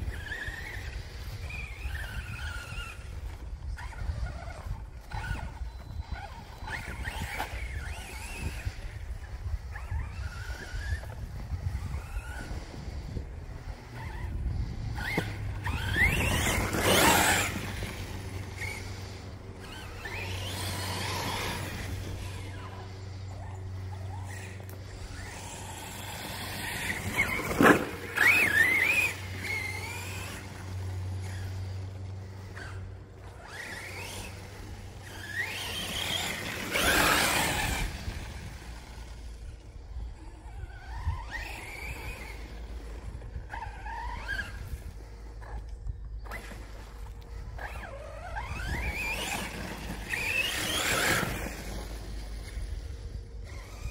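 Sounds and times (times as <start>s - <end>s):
electric motor whining: 0.0s - 53.9s.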